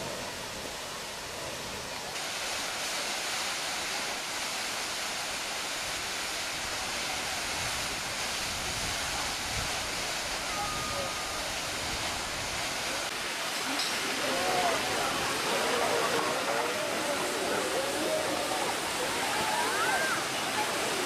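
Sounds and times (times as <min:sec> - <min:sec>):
water gushing in jets: 0:00.0 - 0:21.0.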